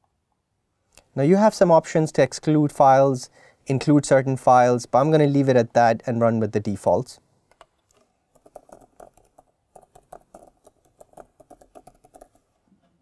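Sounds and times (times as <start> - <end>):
typing on computer keyboard: 7.5 - 12.5.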